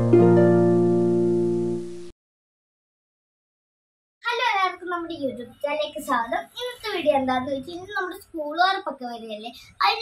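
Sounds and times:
girl speaking: 0:04.2 - 0:10.0.

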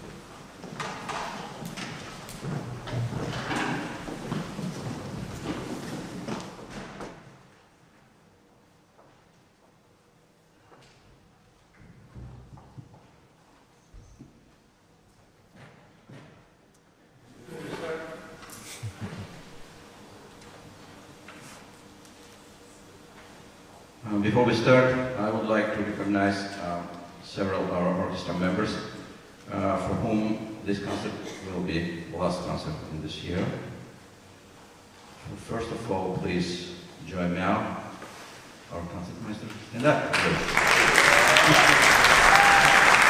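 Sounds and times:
chairs and stands scraping: 0:00.0 - 0:07.2
footsteps on stage floor: 0:00.0 - 0:07.6.

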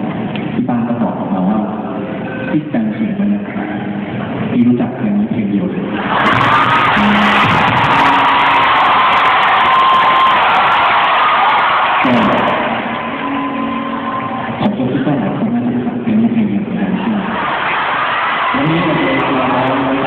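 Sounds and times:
crowd cheering and screaming: 0:05.8 - 0:14.9, 0:16.9 - 0:20.0.

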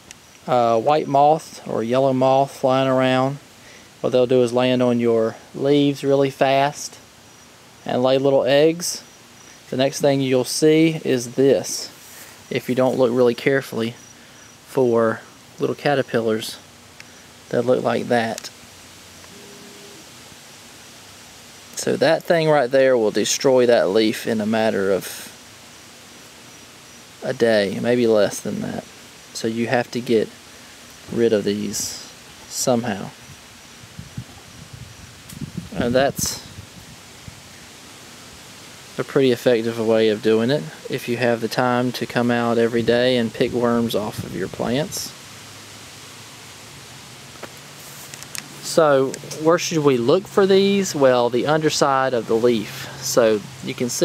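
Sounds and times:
outdoor ambience hiss: 0:00.0 - 0:54.0.

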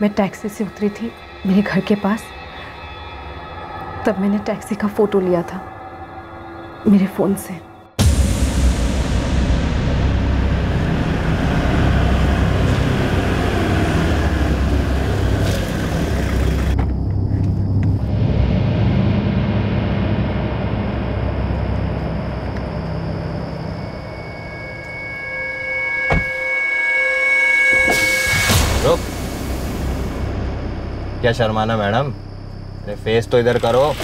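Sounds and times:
car engine rumble: 0:08.5 - 0:25.0
road noise: 0:09.7 - 0:26.8
steady high tones: 0:20.1 - 0:34.0.

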